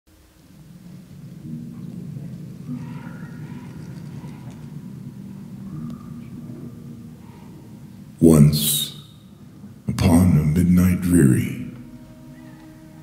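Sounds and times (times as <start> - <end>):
thunder rumbling: 0.2 - 11.0.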